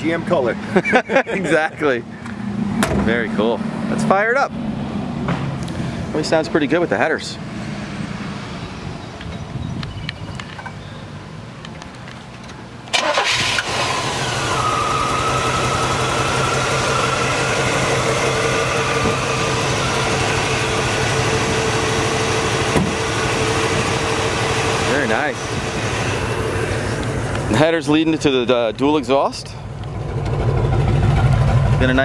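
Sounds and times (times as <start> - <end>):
car engine starting: 12.9 - 32.0
lumpy engine idle: 14.4 - 27.6, 29.5 - 32.0.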